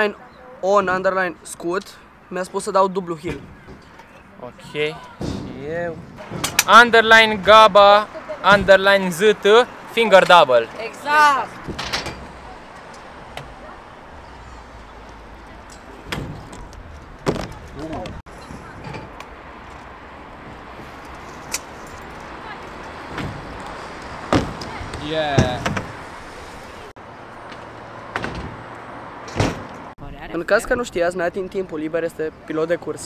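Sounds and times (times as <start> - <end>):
scooter wheels rolling on asphalt: 12.3 - 29.9.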